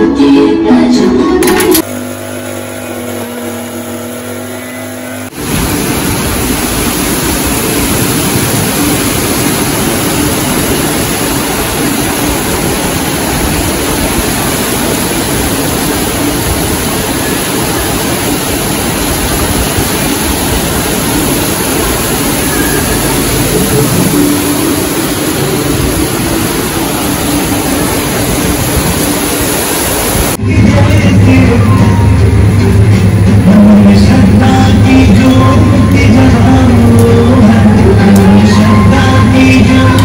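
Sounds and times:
music: 0.0 - 1.8, 30.4 - 40.0
heavy rain pouring: 5.3 - 40.0.

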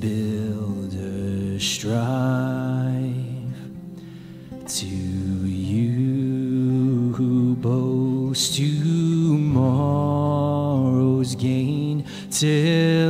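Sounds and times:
congregation singing a hymn: 4.7 - 13.0.

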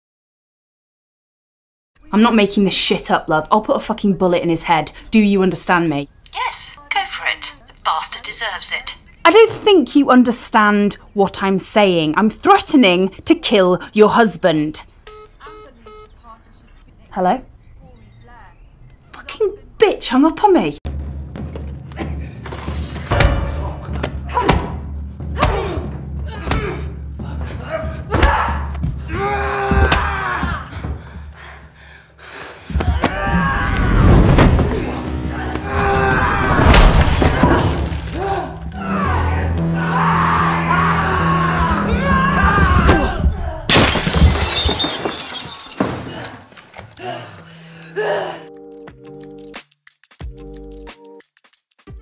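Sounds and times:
low droning score: 34.2 - 42.9
glass shattering: 43.7 - 46.9.

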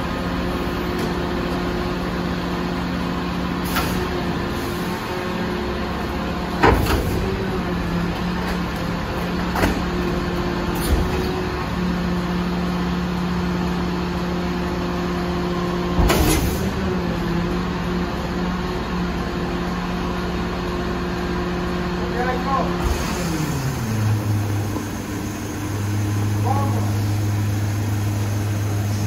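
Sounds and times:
truck engine humming: 0.0 - 16.0, 16.6 - 29.0
hydraulic packer clunks: 0.5 - 2.2, 3.5 - 5.3, 6.0 - 11.9, 15.9 - 17.0.

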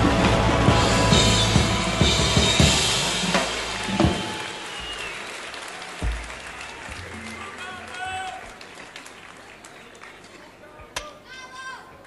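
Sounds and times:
drum kit playing: 0.0 - 5.0
applause: 2.7 - 10.8.

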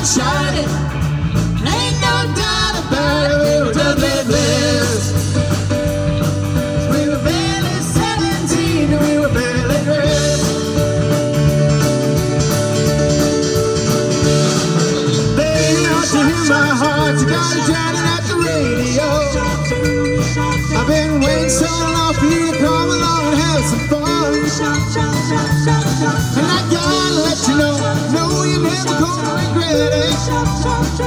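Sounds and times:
man and woman singing: 0.0 - 5.5, 6.6 - 10.6, 15.4 - 20.1, 20.7 - 31.0
drums: 0.0 - 31.0
electric guitar: 0.0 - 31.0
keyboards: 0.0 - 31.0.

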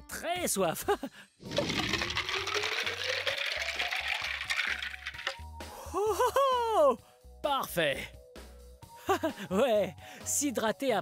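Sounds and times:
water pouring into plastic bottle: 1.4 - 5.4.

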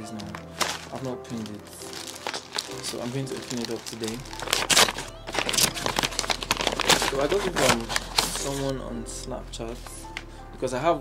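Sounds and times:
plastic bag and paper crinkling: 0.0 - 8.9.

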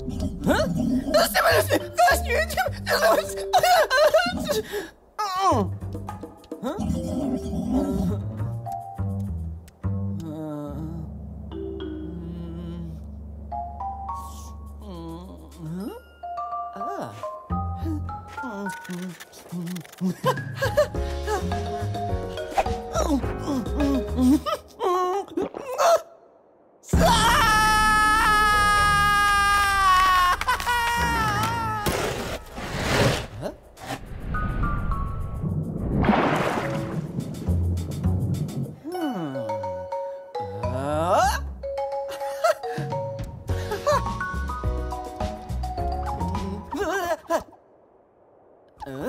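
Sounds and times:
background music with bass line: 37.0 - 38.8.

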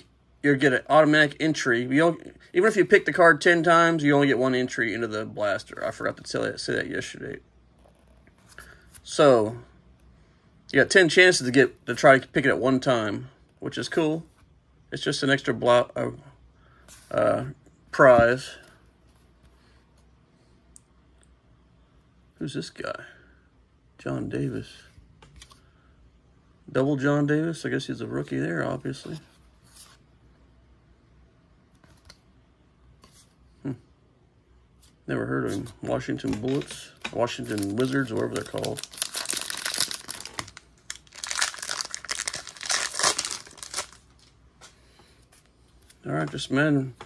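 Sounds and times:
foil wrapper crinkling: 36.4 - 44.4.

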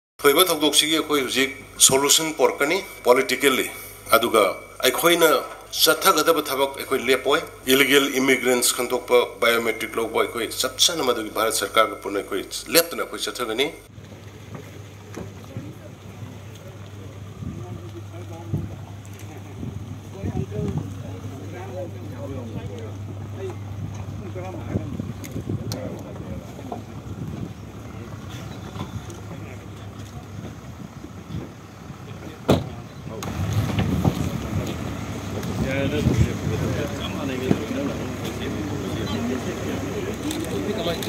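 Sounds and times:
wind rumble on microphone: 13.9 - 38.2
faint voices: 14.9 - 41.0
car door shutting: 32.4 - 34.6.

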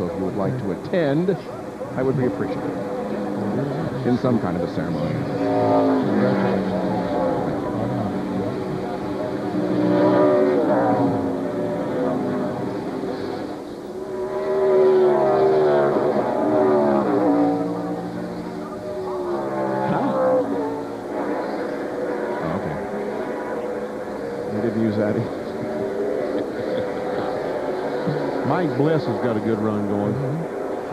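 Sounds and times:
race car engines passing: 0.0 - 30.9.

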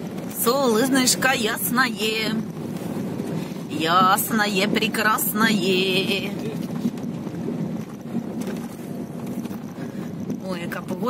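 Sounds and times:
car interior engine and tyre hum: 0.0 - 11.0.

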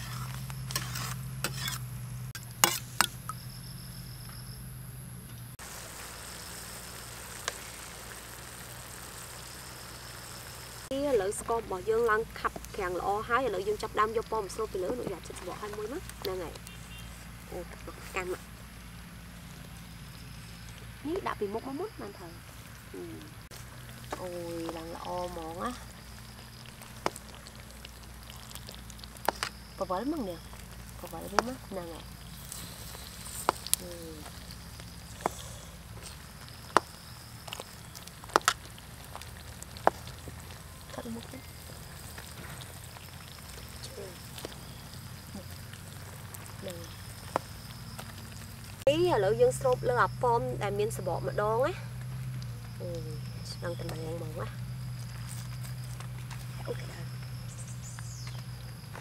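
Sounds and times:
syrup boiling with bubbling hiss: 0.0 - 59.0.

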